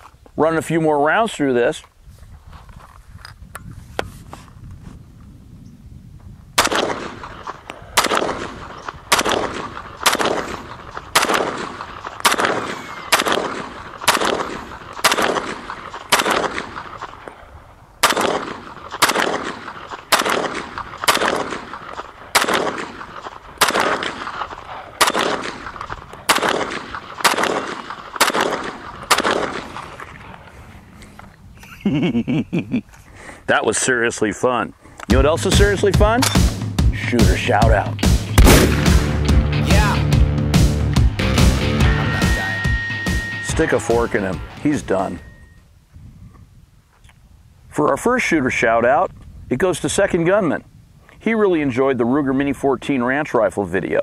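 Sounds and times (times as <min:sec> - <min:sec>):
rifle shots echoing: 0:06.6 - 0:30.3, 0:37.3 - 0:39.4.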